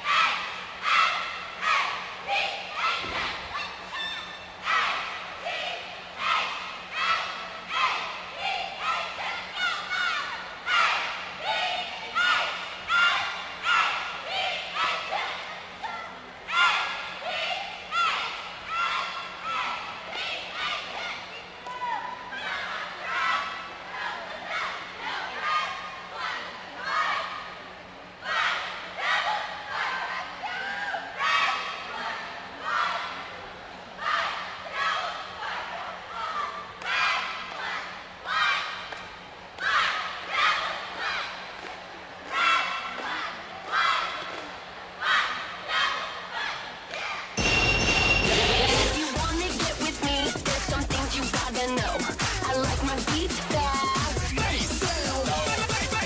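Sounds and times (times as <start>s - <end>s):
cheerleaders chanting in unison: 0.0s - 56.0s
loud recorded routine music: 47.4s - 56.0s.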